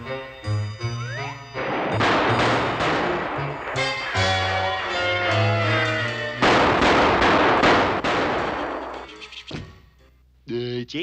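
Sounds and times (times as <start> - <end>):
cartoon music cue: 0.0 - 2.3.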